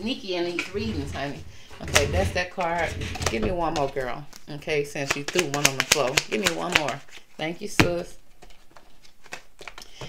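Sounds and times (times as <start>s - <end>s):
tarot cards flicking and rustling: 4.2s - 7.4s, 8.3s - 10.0s.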